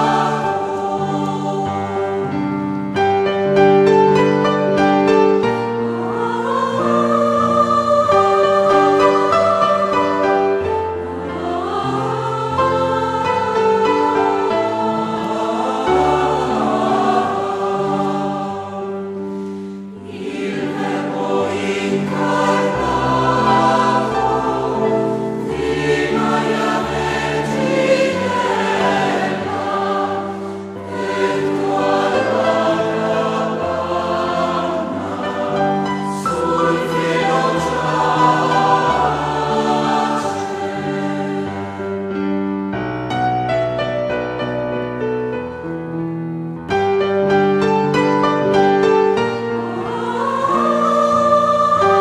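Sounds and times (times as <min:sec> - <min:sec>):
choir singing sustained chords: 0:00.0 - 0:43.0, 0:46.8 - 0:52.0.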